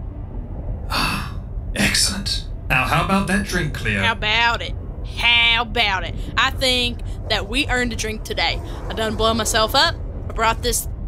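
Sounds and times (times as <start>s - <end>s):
low background hum: 0.0s - 11.0s
person gasping: 0.9s - 1.3s.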